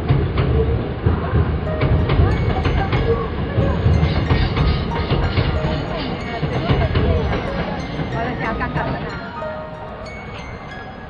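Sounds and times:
train rumbling over bridge: 0.0 - 11.0
wheels clacking over track: 0.0 - 11.0
music playing: 1.6 - 11.0.

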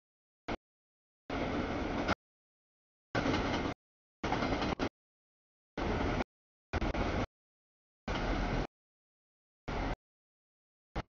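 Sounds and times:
freight train wheels rumbling: 1.3 - 2.2, 3.2 - 4.9, 5.8 - 6.2, 6.8 - 7.3, 8.1 - 8.7.

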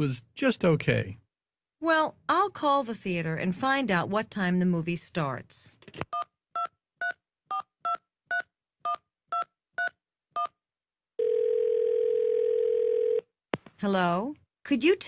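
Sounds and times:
telephone ringing: 11.2 - 13.3.

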